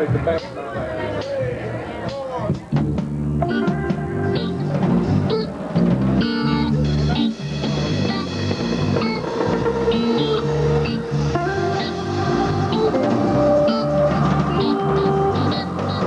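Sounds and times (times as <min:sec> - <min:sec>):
bass guitar: 0:00.0 - 0:16.0
live reggae band playing: 0:00.0 - 0:16.0
electric guitar: 0:02.8 - 0:16.0.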